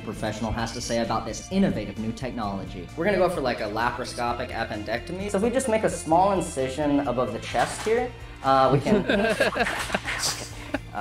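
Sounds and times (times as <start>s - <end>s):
man talking: 0.0s - 11.0s
laughter: 8.7s - 11.0s.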